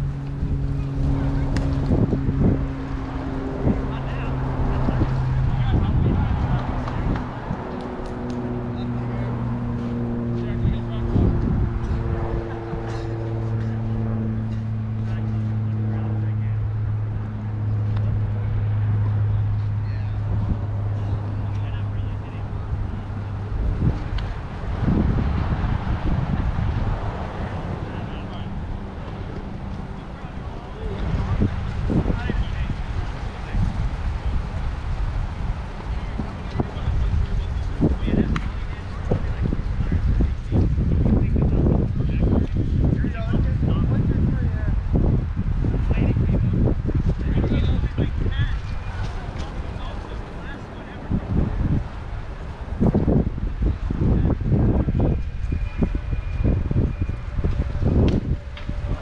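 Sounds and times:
low motor drone: 0.0 - 59.0
wind on microphone: 0.0 - 59.0.

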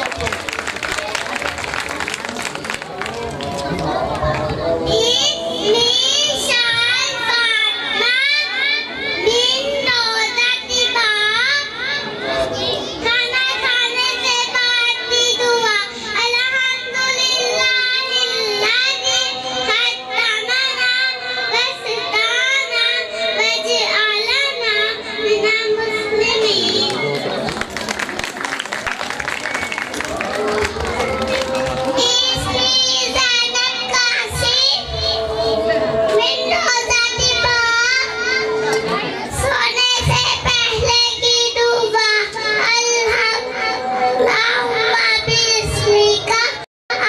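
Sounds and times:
children chanting through microphones: 3.8 - 27.3, 30.9 - 47.0.

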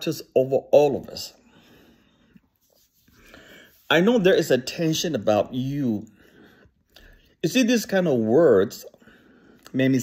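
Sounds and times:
man talking: 0.0 - 1.4, 3.8 - 6.2, 7.4 - 9.0, 9.6 - 10.0
soft breath drawn in: 1.4 - 3.9.

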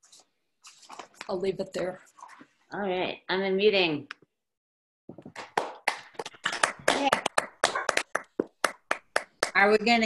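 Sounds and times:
people clapping over video call: 5.1 - 10.0.

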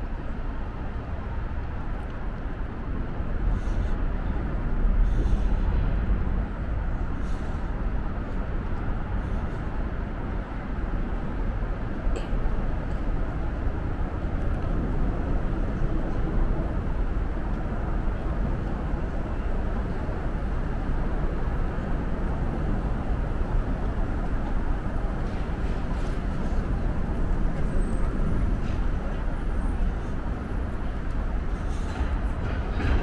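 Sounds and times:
motorway traffic rumble: 0.0 - 33.0.

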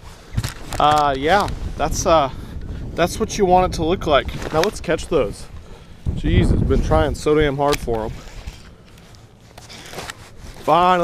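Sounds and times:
wind rumble on microphone: 0.0 - 8.8.

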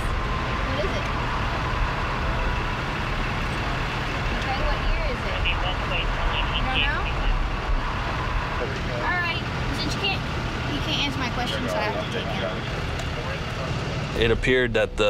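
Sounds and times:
road traffic rumble: 0.0 - 15.0
quiet voices: 4.4 - 7.4.

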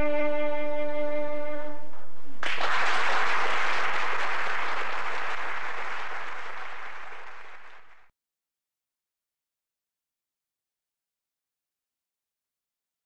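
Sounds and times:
violin note: 0.0 - 2.0
audience applause: 2.4 - 8.1.

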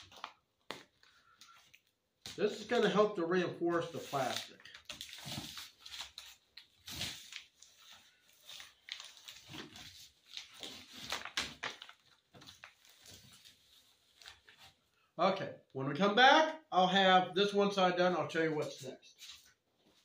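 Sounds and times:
duct tape rustling and crinkling: 0.0 - 15.0.

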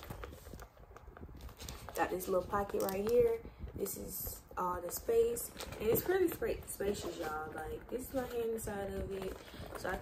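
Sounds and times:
handbag clicks and rustles: 0.0 - 10.0.

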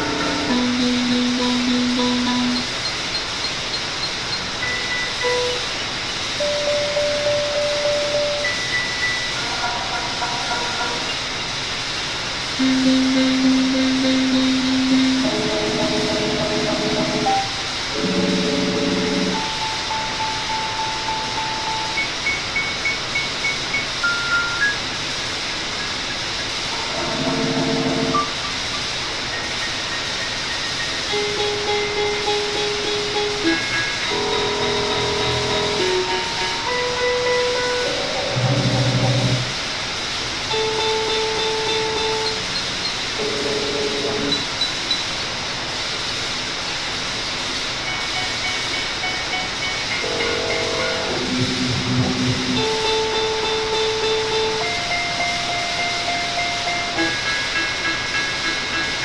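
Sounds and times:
electronic drone music: 0.0 - 5.8, 12.6 - 22.6, 26.7 - 28.4, 30.8 - 39.6, 48.0 - 59.0
steady hissing noise: 0.0 - 59.0.

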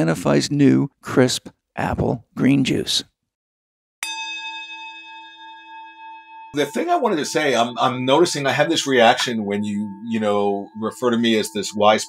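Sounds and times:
bell-like chime ringing: 4.0 - 12.0.

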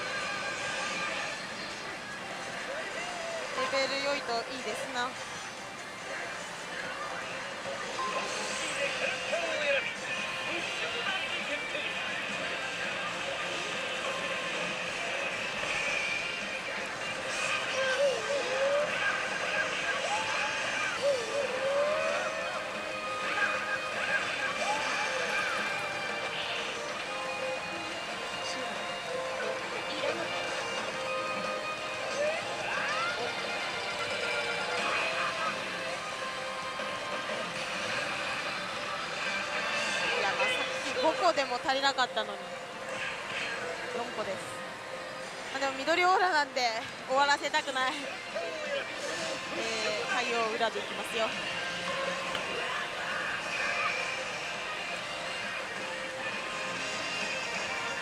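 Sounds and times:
slot machine music and effects: 4.2 - 46.2.

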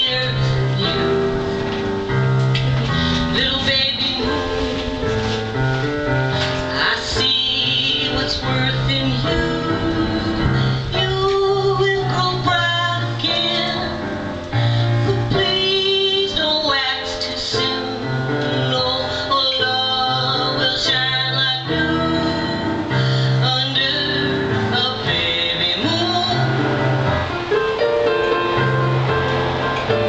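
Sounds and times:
woman singing: 0.0 - 1.4, 2.9 - 27.3
electronic keyboard: 0.0 - 30.0.

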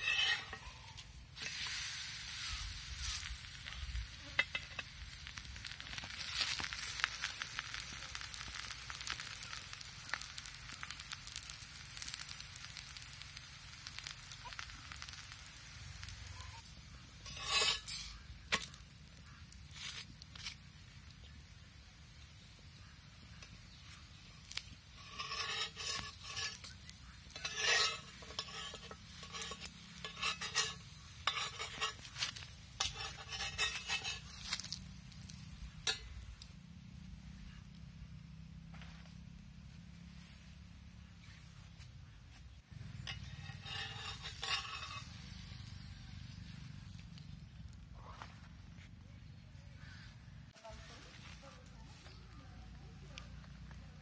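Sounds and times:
spatula scraping metal griddle: 0.0 - 20.6, 23.3 - 36.1, 42.8 - 46.1
batter sizzling on griddle: 0.0 - 54.0.

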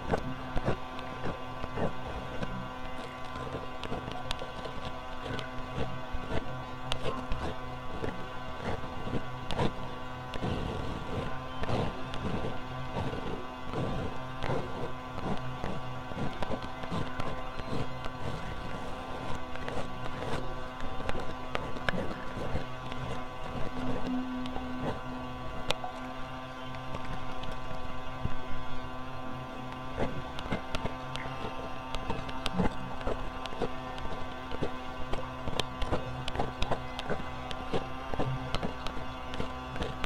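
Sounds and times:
electronic drone: 0.0 - 40.0.

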